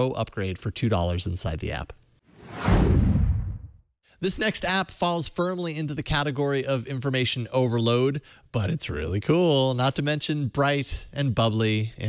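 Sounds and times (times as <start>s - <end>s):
downward sweeping whoosh: 2.4s - 3.7s.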